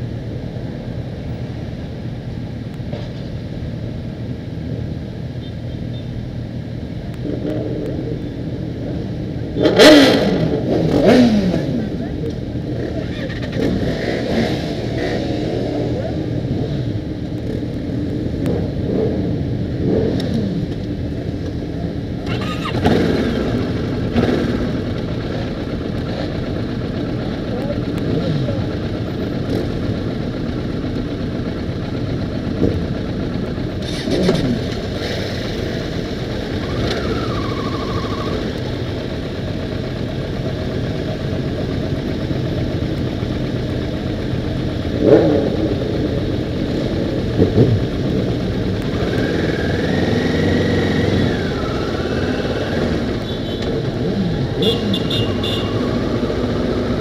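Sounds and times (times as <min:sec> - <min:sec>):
motorcycle engines running: 0:00.0 - 0:57.0
road noise: 0:00.0 - 0:57.0
motorcycle engine revs: 0:09.4 - 0:21.0, 0:22.3 - 0:57.0.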